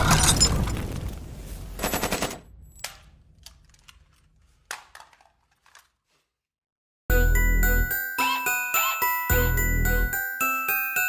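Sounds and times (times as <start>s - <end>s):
crash: 0.0s - 4.1s.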